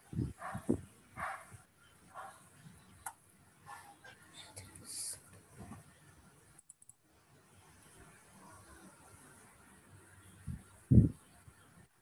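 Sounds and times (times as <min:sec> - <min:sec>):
faint clicks: 0:06.6 - 0:07.0.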